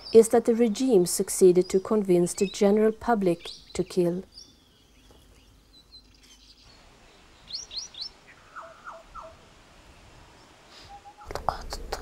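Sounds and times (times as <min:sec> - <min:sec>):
bird chirping: 0:00.0 - 0:11.4
low background hiss: 0:00.0 - 0:12.0.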